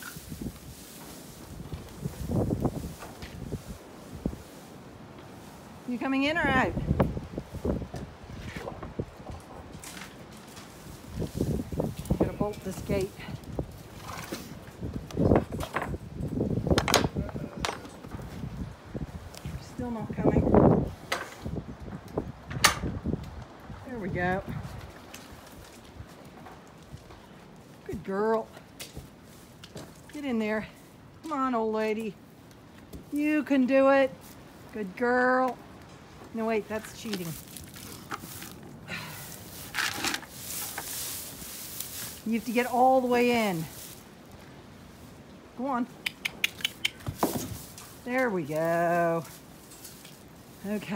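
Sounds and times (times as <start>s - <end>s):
rustling in straw bedding: 0.0s - 9.2s, 9.8s - 15.4s, 24.0s - 31.0s, 32.7s - 35.4s, 36.1s - 45.8s, 47.0s - 50.9s.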